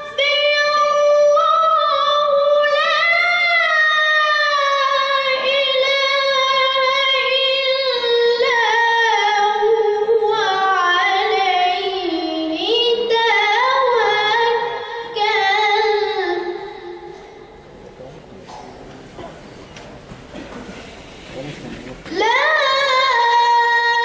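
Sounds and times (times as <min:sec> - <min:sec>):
child reciting melodically: 0:00.0 - 0:17.4, 0:22.1 - 0:24.0.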